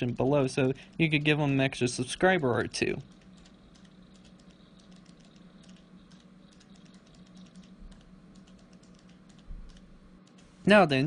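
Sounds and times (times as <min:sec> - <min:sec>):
low hum: 0:00.0 - 0:11.0
keyboard typing: 0:03.0 - 0:10.6.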